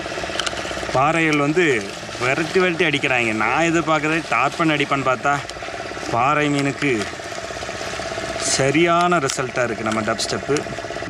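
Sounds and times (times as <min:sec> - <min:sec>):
pulsing mechanical hum: 0:00.0 - 0:11.0
man speaking: 0:00.9 - 0:07.1, 0:08.4 - 0:10.8.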